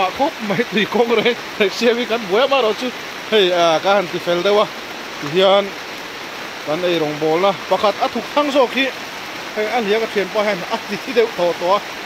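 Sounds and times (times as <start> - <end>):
person speaking: 0.0 - 5.8, 6.6 - 11.9
rain falling: 0.0 - 12.0.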